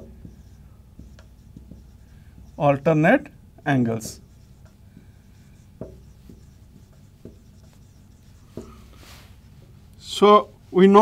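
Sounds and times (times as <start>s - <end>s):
marker pen on whiteboard: 0.0s - 11.0s.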